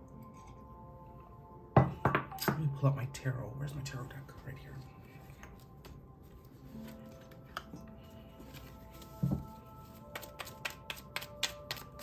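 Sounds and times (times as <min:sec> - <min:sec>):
soft background music: 0:00.0 - 0:12.0
cards being shuffled: 0:08.4 - 0:12.0.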